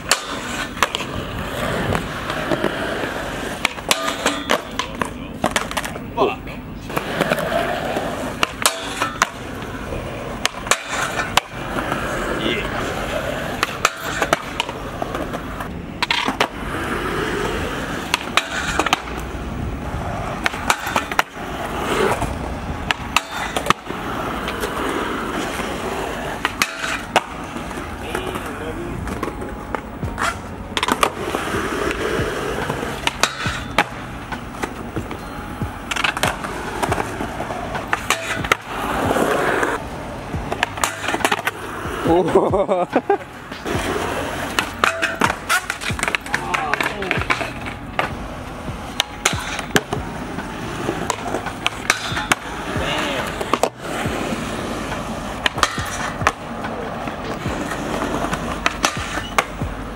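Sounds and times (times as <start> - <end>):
skateboard sliding on metal rail: 0.0 - 6.0, 6.9 - 59.9
skateboard popping and landing: 0.0 - 6.2, 6.9 - 59.9
skateboard wheels rolling on concrete: 0.0 - 59.9.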